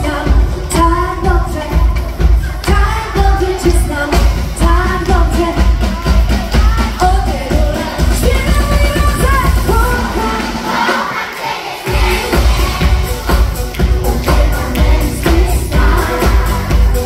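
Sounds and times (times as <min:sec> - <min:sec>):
woman singing pop song: 0:00.0 - 0:11.0, 0:12.0 - 0:17.0
live drums: 0:00.0 - 0:11.2, 0:11.8 - 0:17.0
backing track: 0:00.0 - 0:17.0.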